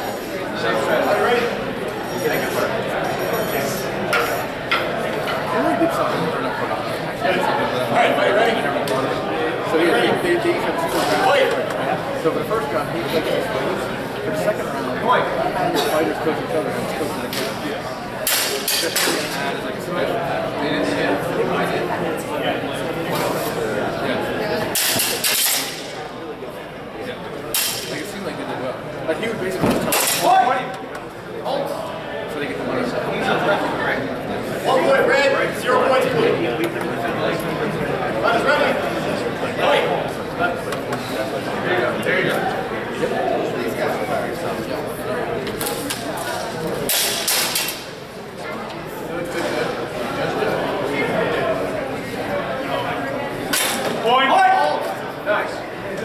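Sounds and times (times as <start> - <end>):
onlookers chattering: 0.0 - 56.0.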